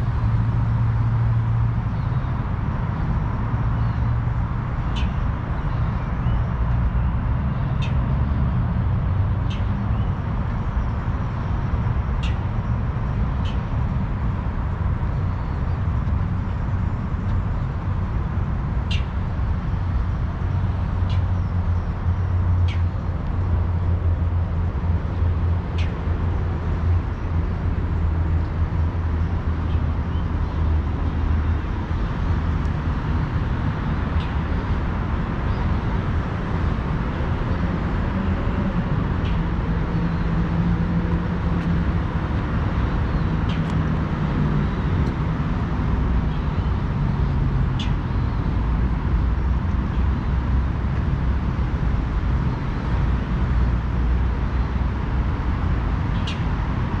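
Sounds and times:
distant road traffic rumble: 0:00.0 - 0:57.0.

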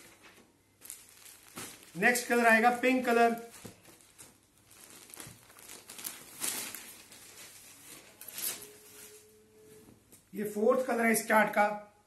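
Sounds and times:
fabric rustling: 0:00.0 - 0:10.3.

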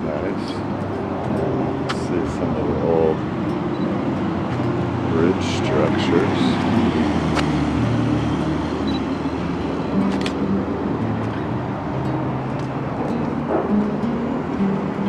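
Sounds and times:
traffic rumbling over bridge: 0:00.0 - 0:15.0.

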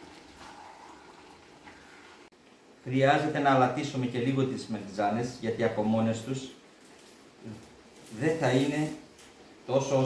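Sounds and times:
filling bubbling in frying pan: 0:00.0 - 0:02.3.

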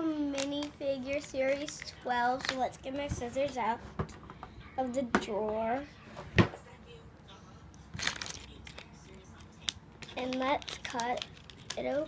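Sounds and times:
foil packet handling on wooden table: 0:08.0 - 0:08.8, 0:10.0 - 0:12.0.

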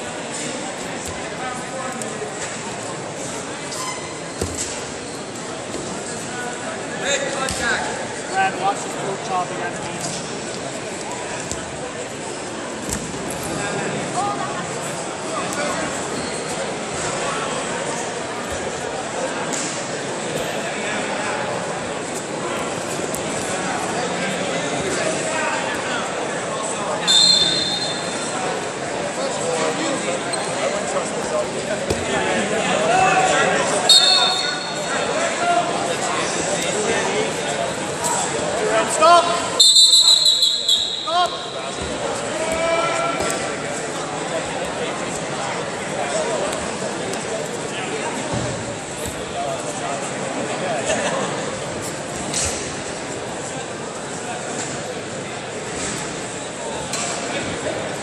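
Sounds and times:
indistinct voices and chatter: 0:00.0 - 0:58.0
people shouting and talking: 0:00.0 - 0:58.0
high squeak: 0:03.7 - 0:04.4.

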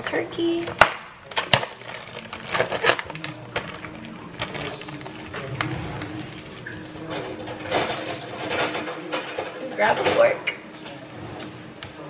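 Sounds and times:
plastic film crackling and tearing: 0:00.5 - 0:09.7.

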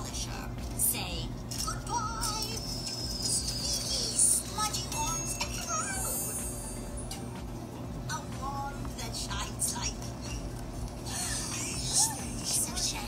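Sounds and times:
backing music: 0:02.2 - 0:13.0.

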